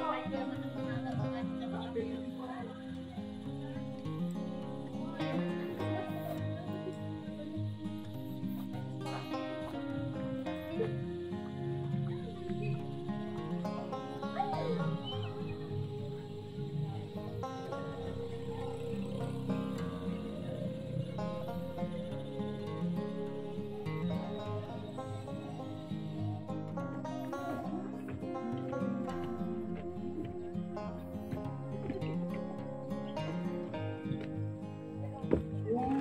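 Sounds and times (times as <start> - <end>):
guitar accompaniment: 0.0 - 36.0.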